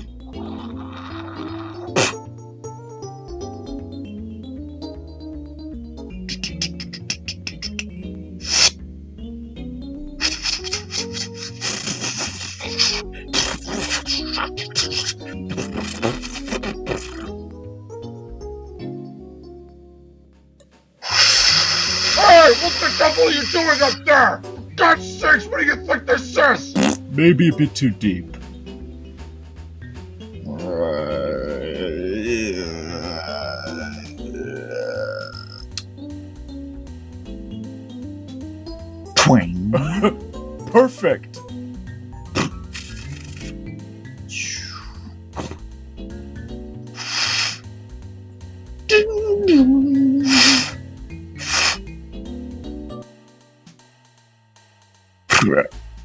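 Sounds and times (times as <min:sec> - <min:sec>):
low belch-like strained sound: 0:00.1 - 0:02.4, 0:26.8 - 0:27.2, 0:30.4 - 0:35.8
cartoon digging scraping: 0:00.4 - 0:02.3, 0:06.3 - 0:07.8, 0:08.4 - 0:08.8, 0:10.2 - 0:17.4, 0:21.0 - 0:24.1, 0:42.4 - 0:43.6, 0:44.3 - 0:45.6, 0:46.9 - 0:47.7, 0:50.2 - 0:50.8, 0:51.4 - 0:51.8
cartoon orchestral music: 0:21.8 - 0:28.7, 0:48.9 - 0:50.8.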